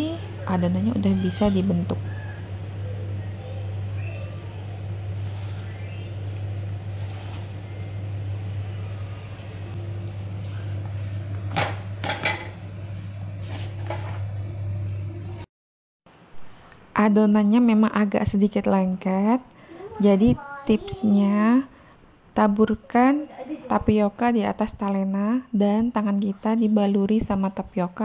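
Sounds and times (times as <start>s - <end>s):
low hum: 0.0s - 15.5s
hands working dough in plastic bowl: 4.4s - 8.1s.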